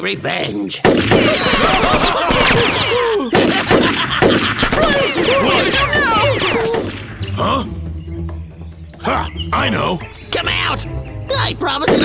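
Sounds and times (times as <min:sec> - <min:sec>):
cartoon gunshots: 0:00.8 - 0:07.1.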